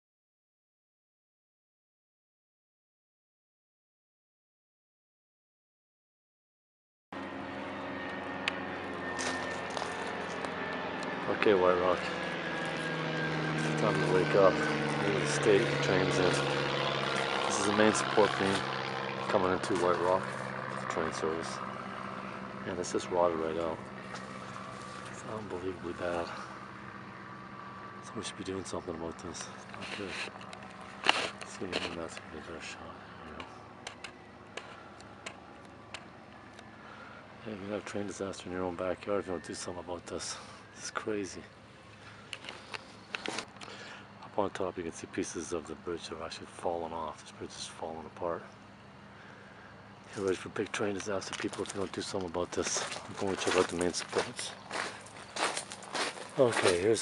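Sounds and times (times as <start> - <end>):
steady engine drone: 7.2 - 57.0.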